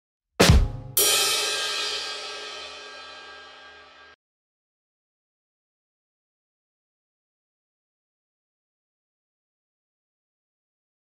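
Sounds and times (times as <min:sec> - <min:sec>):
crash cymbal ringing: 0:01.0 - 0:04.2.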